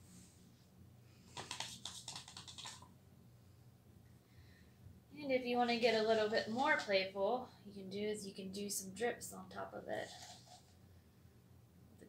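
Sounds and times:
faint room hum: 0.0s - 12.0s
paintbrush scrubbing on paper: 1.4s - 2.8s, 5.7s - 7.0s, 9.9s - 10.7s.

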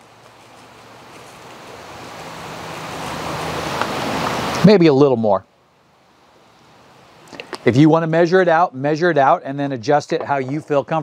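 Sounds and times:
rushing noise: 1.0s - 4.9s.

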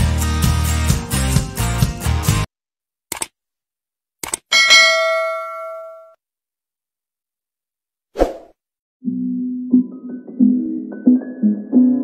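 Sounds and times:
bright bell ding: 4.5s - 6.2s.

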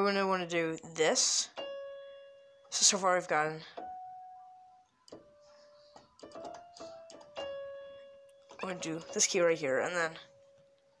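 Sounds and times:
electronic keyboard single notes: 1.5s - 11.0s.

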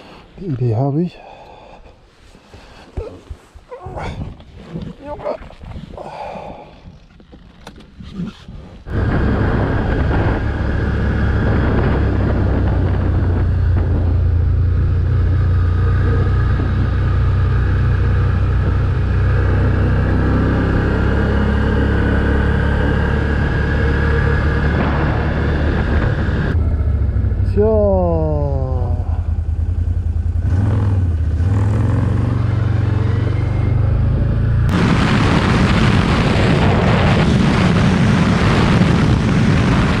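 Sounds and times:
wind and road noise rushing: 0.0s - 40.0s
wind noise on microphone: 3.8s - 27.2s, 31.4s - 40.0s
quad bike engine running: 8.3s - 27.7s
falling whine: 8.9s - 40.0s.

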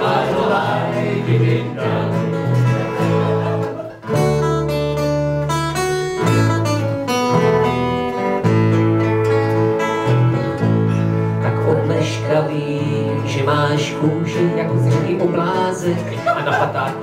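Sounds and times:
acoustic guitars strumming: 0.0s - 17.0s.

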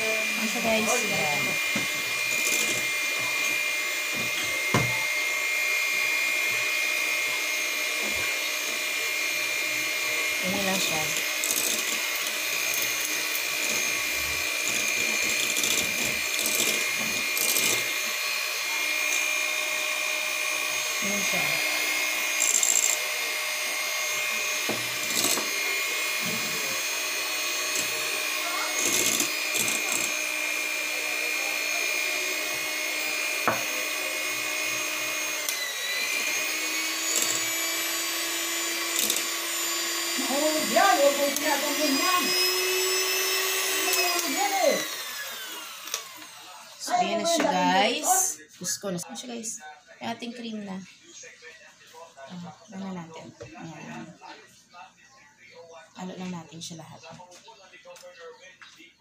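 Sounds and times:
electric hand mixer whining: 0.0s - 49.4s.

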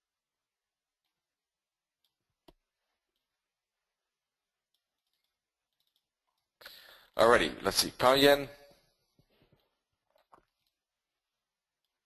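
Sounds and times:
computer mouse clicks: 4.7s - 6.5s.

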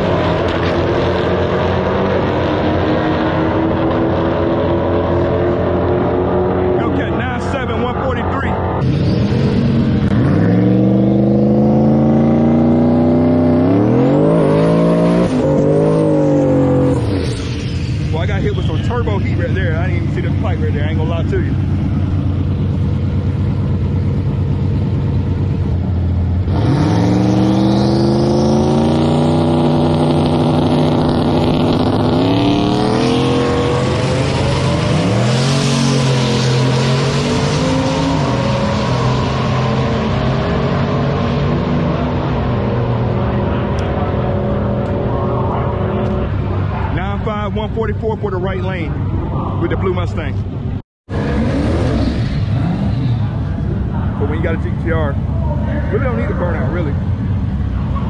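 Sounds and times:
car engine revving hard: 0.0s - 22.8s, 26.4s - 48.4s, 51.1s - 55.2s.

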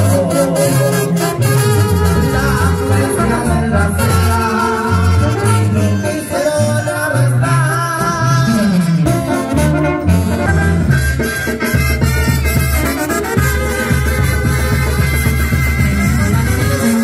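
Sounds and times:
banda music with brass: 0.0s - 17.0s
bass line: 0.0s - 17.0s.

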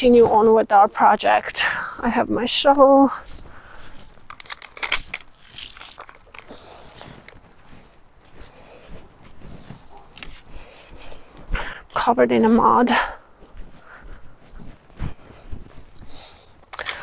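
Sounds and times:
footsteps crunching on dry ground: 0.0s - 17.0s
handling clicks and knocks: 4.2s - 6.6s.

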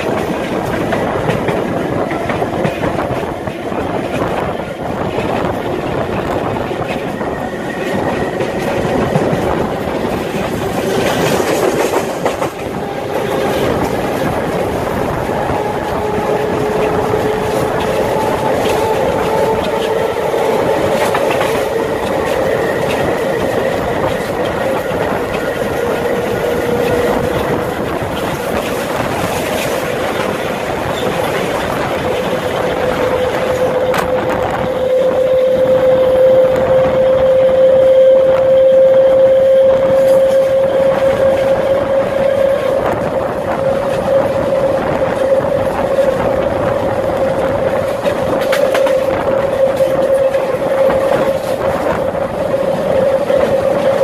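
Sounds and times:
electric train whine: 0.0s - 54.0s
wheels rumbling on rail: 0.0s - 54.0s.

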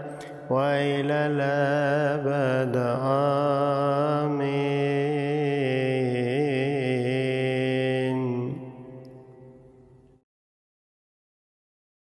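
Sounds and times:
person chanting: 0.0s - 9.8s.

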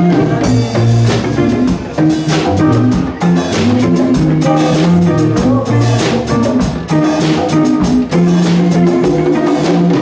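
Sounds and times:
bass: 0.0s - 10.0s
congas: 0.0s - 10.0s
drum kit beat: 0.0s - 10.0s
electric guitars: 0.0s - 10.0s.

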